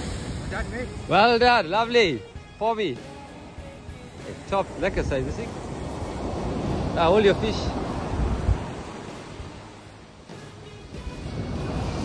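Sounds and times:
wind rumbling on microphone: 0:00.0 - 0:01.6, 0:04.4 - 0:10.1, 0:10.9 - 0:12.0.

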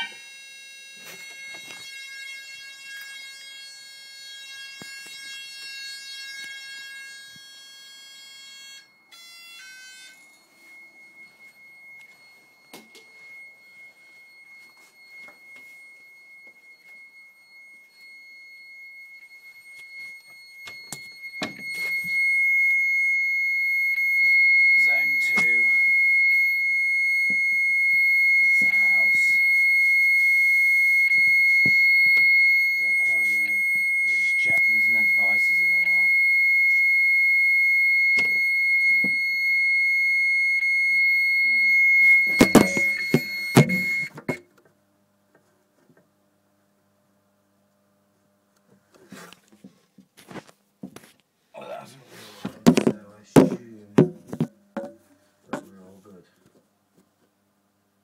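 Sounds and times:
fire alarm high-pitched tone: 0:00.0 - 0:44.5.

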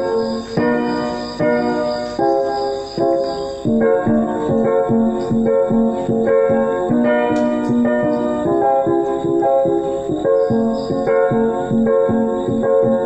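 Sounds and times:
electronic keyboard chords: 0:00.0 - 0:13.0.

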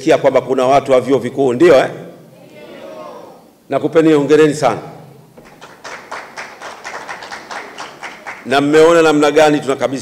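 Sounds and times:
audience clapping: 0:05.4 - 0:09.0.

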